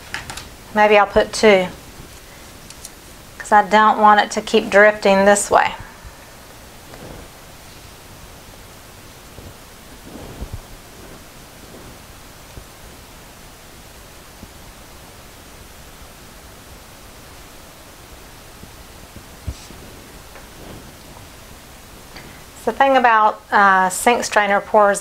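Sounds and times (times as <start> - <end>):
room noise hiss: 0.0 - 25.0.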